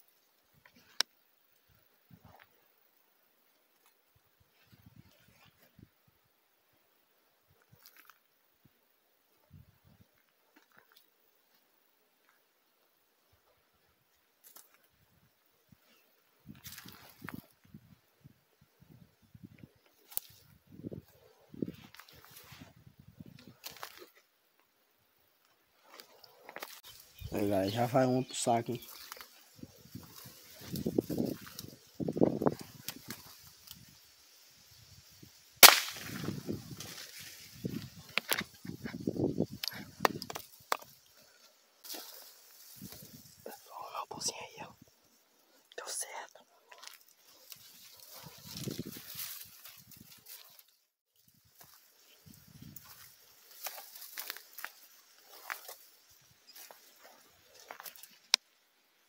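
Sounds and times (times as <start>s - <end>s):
rustling through dry brush: 14.0s - 59.0s
sharp crack: 35.6s - 37.1s.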